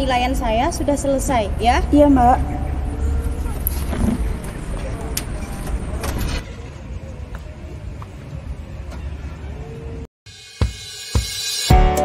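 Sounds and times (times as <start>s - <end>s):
low outdoor rumble: 0.0s - 10.1s.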